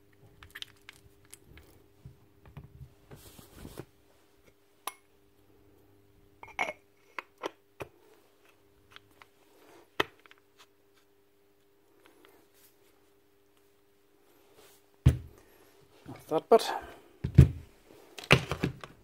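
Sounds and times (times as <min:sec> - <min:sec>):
rustling scrape: 0:03.1 - 0:03.9.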